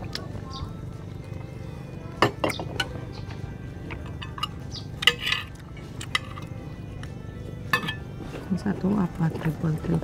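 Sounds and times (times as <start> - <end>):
cutlery and dishes clinking: 3.9 - 6.5, 7.7 - 8.1.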